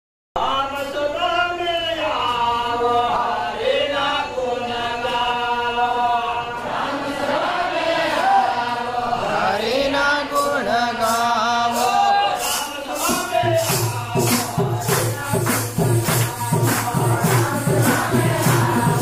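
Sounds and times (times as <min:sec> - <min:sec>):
men singing devotional chant: 0:00.4 - 0:19.0.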